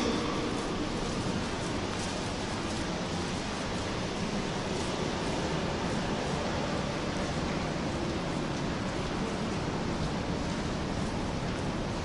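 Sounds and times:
steady rushing background noise: 0.0s - 12.0s.

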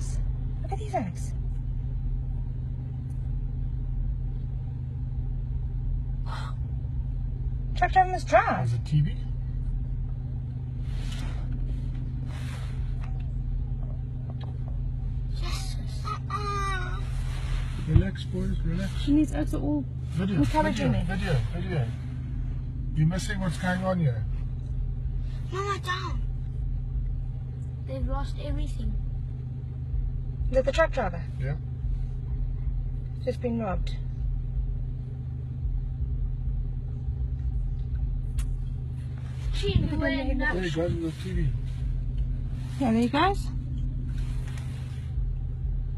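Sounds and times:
steady low hum: 0.0s - 45.9s
vehicle engine idling: 0.0s - 45.9s.

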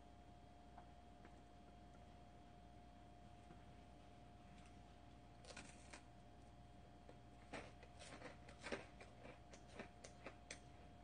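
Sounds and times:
faint electrical hum: 0.0s - 11.0s
wafer being chewed: 7.1s - 10.7s.

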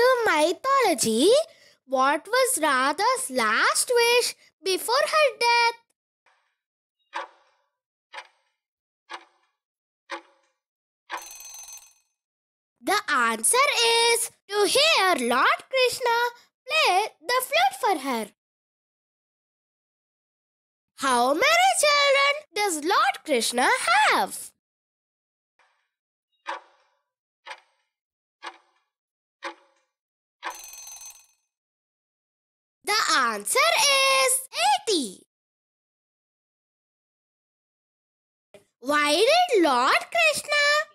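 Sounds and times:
electronic bell-like ring: 11.2s - 12.0s, 30.5s - 31.3s
person speaking: 12.9s - 16.1s, 32.9s - 35.2s.

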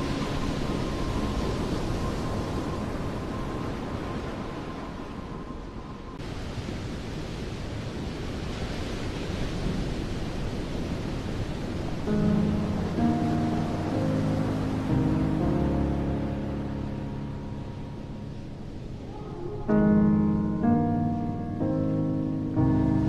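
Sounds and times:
steady rushing noise: 0.0s - 23.0s.

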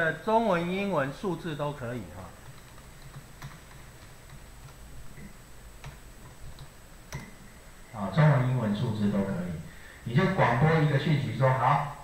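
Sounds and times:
keyboard keys clicking: 2.4s - 7.3s.

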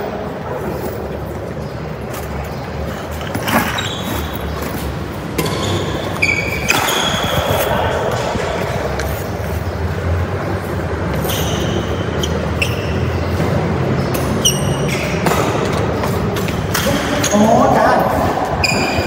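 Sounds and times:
shoe squeaks on court: 3.3s - 7.9s, 11.1s - 13.3s, 14.0s - 15.4s, 18.6s - 19.0s.

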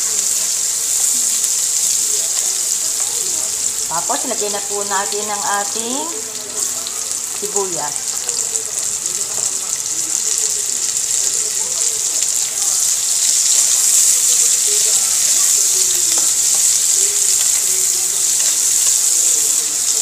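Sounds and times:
vegetables sizzling in hot oil: 0.0s - 20.0s.

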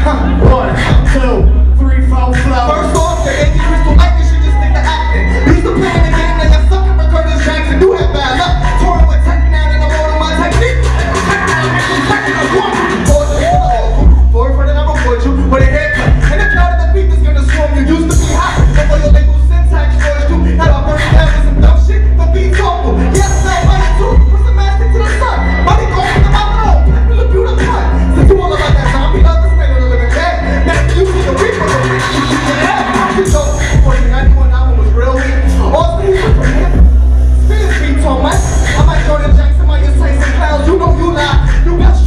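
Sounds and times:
hip hop beat: 0.0s - 42.0s
person rapping into a microphone: 0.0s - 42.0s.

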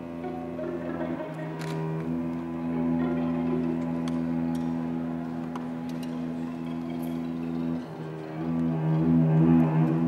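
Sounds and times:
string quartet low bowed chord: 0.0s - 10.0s.

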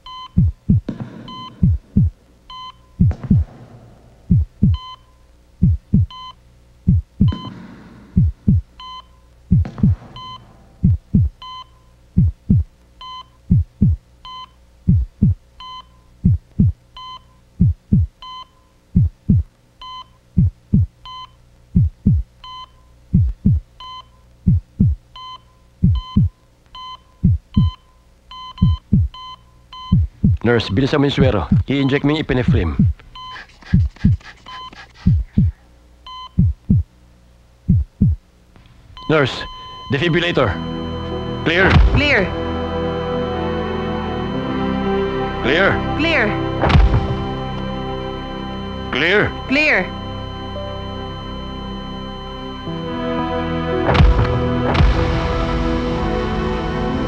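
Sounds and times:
heart monitor beep: 0.0s - 3.6s, 4.2s - 7.6s, 8.2s - 36.9s, 37.7s - 38.2s, 39.0s - 42.5s, 46.0s - 53.0s, 53.7s - 55.1s
heartbeat thumps: 0.0s - 5.0s, 5.6s - 12.8s, 13.4s - 14.1s, 14.8s - 17.0s, 17.6s - 19.6s, 20.3s - 22.4s, 23.1s - 23.8s, 24.4s - 25.2s, 25.8s - 26.4s, 27.2s - 27.8s, 28.4s - 37.0s, 37.6s - 38.3s, 41.2s - 42.5s, 46.6s - 47.5s, 53.8s - 56.7s
steady hum: 0.0s - 57.0s.

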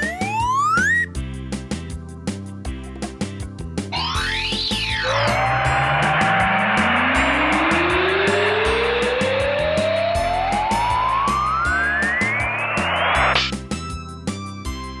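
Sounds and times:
hissing whistle rising in pitch: 0.0s - 1.1s, 4.0s - 13.4s.

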